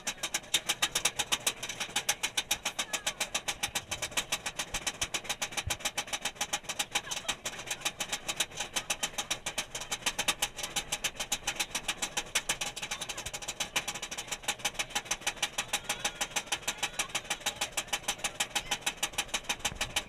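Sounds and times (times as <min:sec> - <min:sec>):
roller coaster ratchet clacking: 0:00.0 - 0:20.0.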